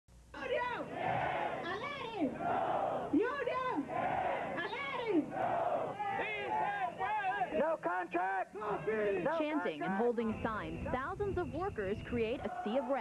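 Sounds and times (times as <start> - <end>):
crowd shouting reply: 0.4 - 10.0.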